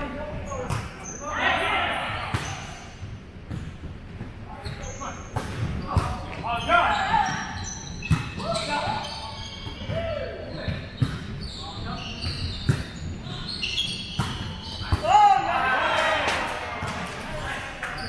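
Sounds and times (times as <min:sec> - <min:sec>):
sneakers squeaking on hardwood: 0:02.0 - 0:15.3.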